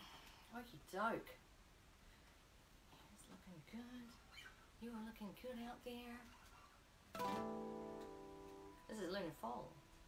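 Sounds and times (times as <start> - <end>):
acoustic guitar chord strummed: 7.2 - 9.0.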